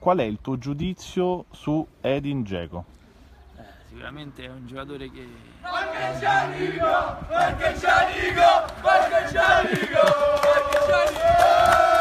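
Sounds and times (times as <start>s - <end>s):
crowd chanting rhythmically: 5.6s - 12.0s.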